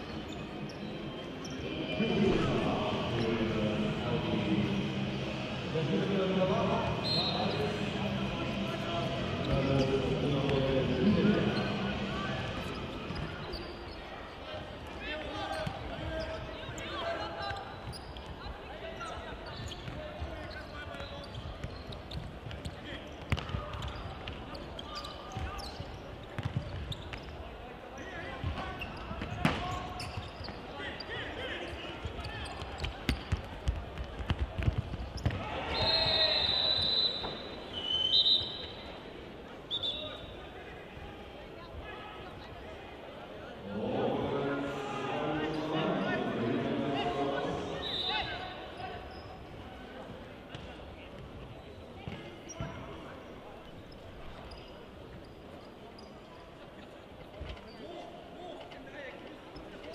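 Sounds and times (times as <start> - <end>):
echoing voices in a hall: 0.0 - 21.6, 22.5 - 59.9
football kicked and bouncing: 23.2 - 24.4, 33.1 - 35.4.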